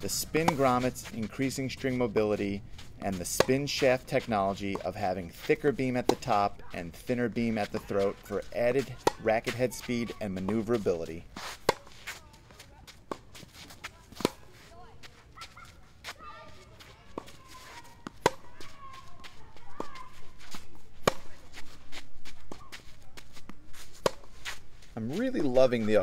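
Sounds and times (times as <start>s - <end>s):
tennis ball hitting racket: 0.1s - 26.0s
ball bouncing on court: 7.6s - 10.7s.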